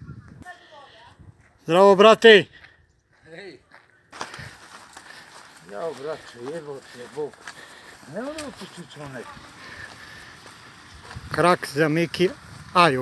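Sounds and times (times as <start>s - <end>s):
nearby talk: 5.6s - 10.3s.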